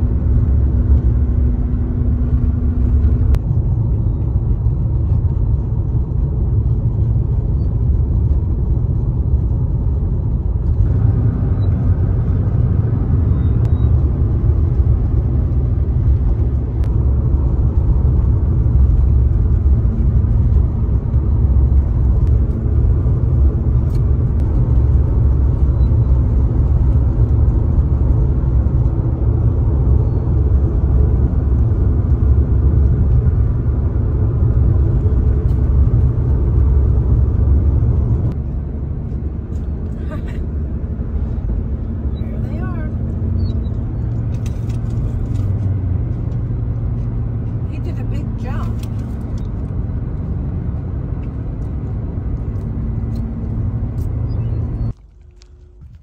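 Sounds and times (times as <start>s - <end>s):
tyres and engine rumbling: 0.0s - 56.0s.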